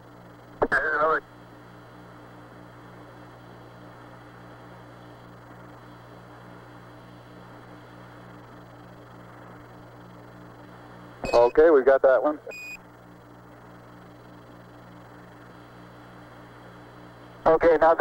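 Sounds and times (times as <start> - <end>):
low pulsing hum: 0.0 - 17.8
radio static hiss: 0.0 - 18.0.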